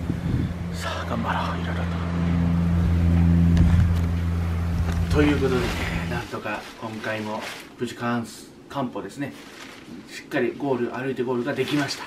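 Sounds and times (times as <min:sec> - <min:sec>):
vehicle engine humming: 0:00.0 - 0:06.7.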